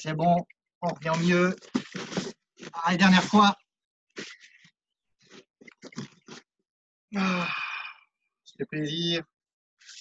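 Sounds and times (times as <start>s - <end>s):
person grunting and breathing: 7.2s - 8.0s.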